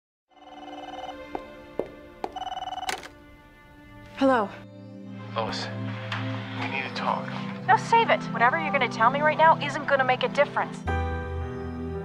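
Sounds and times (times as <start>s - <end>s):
telephone ringing with electronic trill: 0.3s - 1.2s, 2.3s - 3.1s.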